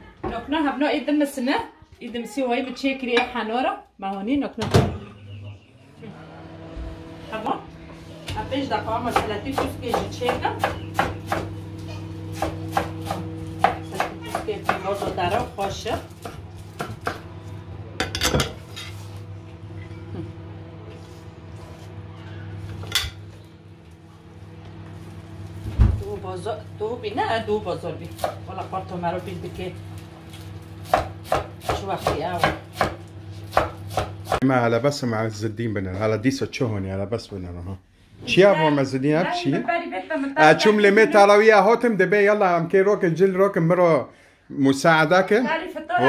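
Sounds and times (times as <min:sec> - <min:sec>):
low hum: 0:04.9 - 0:14.2, 0:14.8 - 0:30.8.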